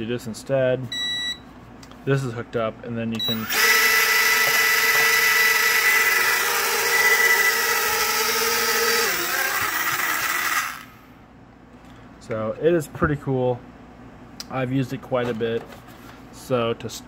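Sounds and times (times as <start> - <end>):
small drone motors whining: 3.4 - 10.9.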